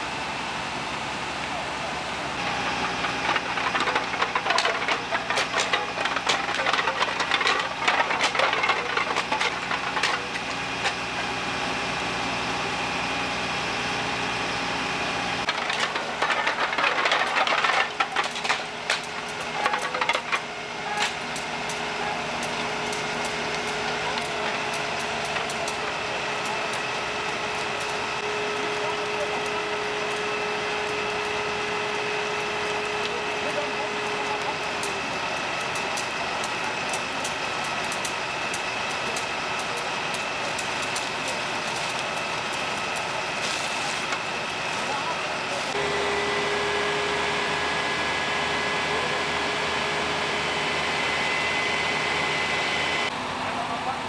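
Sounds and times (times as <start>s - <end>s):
fire engine engines and pumps running: 0.0s - 54.0s.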